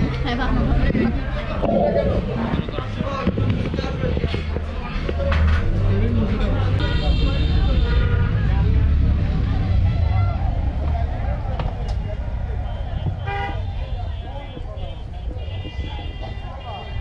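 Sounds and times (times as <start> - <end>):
steady low rumble: 0.0 - 4.8
diners chatter: 0.0 - 17.0
short high-pitched tone: 1.6 - 2.4.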